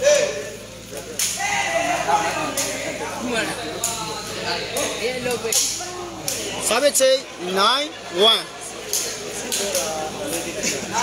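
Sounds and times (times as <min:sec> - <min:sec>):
men calling out: 0:00.0 - 0:08.6.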